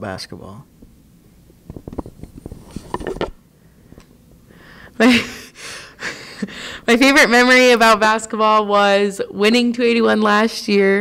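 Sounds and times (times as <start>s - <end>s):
microphone handling noise: 0.8s - 4.1s.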